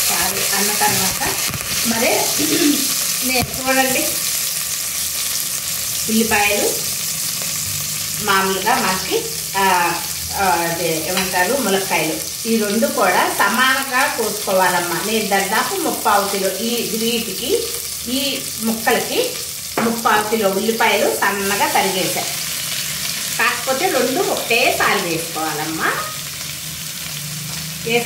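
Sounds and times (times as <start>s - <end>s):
woman talking: 0.0s - 4.2s, 6.1s - 6.8s, 8.2s - 22.4s, 23.4s - 26.2s
chillies sizzling in hot oil: 0.0s - 28.0s.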